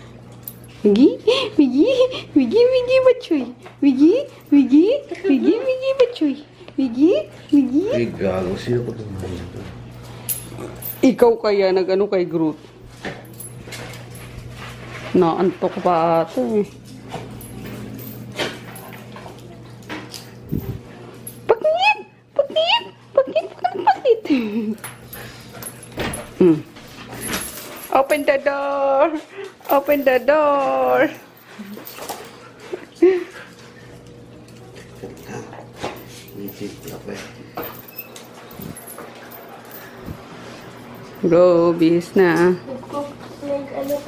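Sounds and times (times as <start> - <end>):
metal chain leash clinking: 10.0 - 11.4, 13.2 - 14.9, 16.4 - 21.6, 24.2 - 28.7, 29.6 - 32.5, 36.0 - 42.6, 43.4 - 44.0.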